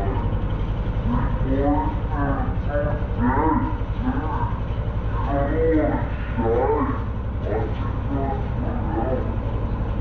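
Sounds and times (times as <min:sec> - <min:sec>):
lawn mower engine running: 0:00.0 - 0:10.0
wavering voice-like sound: 0:01.0 - 0:09.4.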